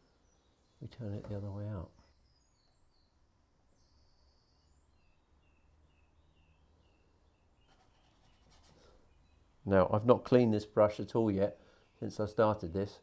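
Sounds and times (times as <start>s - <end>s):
faint distant birds chirping: 0.0s - 13.0s
paintbrush scratching on board: 7.6s - 9.0s.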